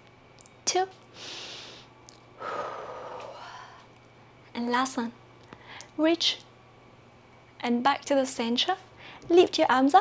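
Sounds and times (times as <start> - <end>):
woman breathing out: 1.2 - 3.8.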